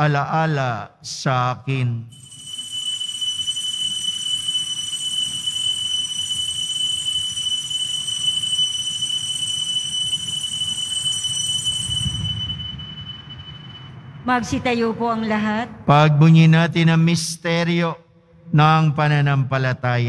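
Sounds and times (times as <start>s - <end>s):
altar bells ringing: 2.1s - 14.4s.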